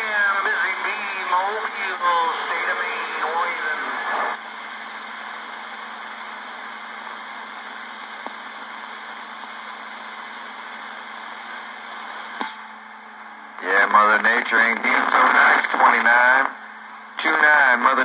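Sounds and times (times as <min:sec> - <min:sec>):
distant voice over radio: 0:00.0 - 0:04.4, 0:13.6 - 0:16.6, 0:17.2 - 0:18.0
radio static hiss: 0:00.0 - 0:18.0.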